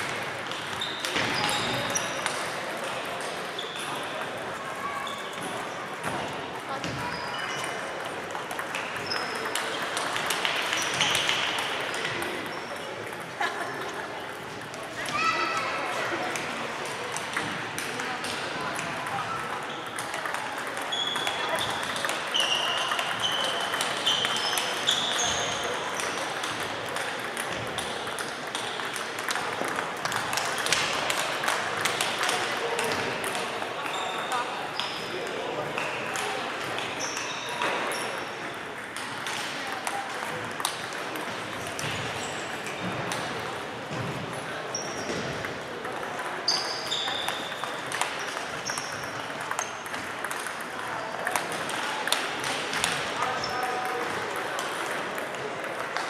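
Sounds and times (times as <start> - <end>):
table tennis balls clicking: 0.0 - 4.6, 5.4 - 15.0, 16.3 - 56.0
murmur of voices: 0.0 - 56.0.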